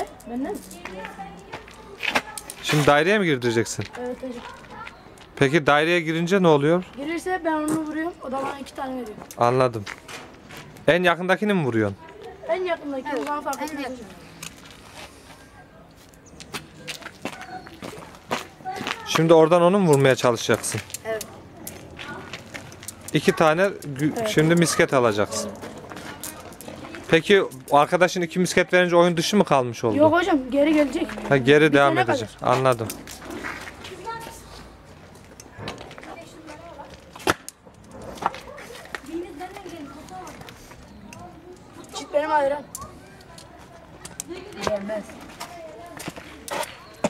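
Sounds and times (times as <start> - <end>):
faint children's voices: 0.0 - 9.4, 11.6 - 47.0
faint voices: 37.9 - 47.0.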